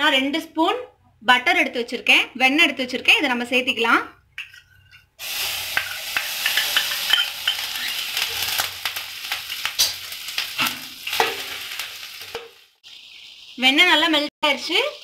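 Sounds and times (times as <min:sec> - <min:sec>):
steel spoon scraping a pan: 0:04.4 - 0:08.7
butter sizzling in a hot pan: 0:05.2 - 0:15.0.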